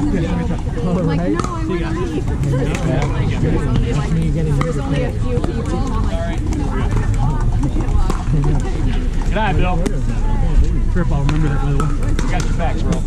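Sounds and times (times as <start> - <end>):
overlapping chatter: 0.0 - 13.0
paddles hitting ball: 11.2 - 13.0.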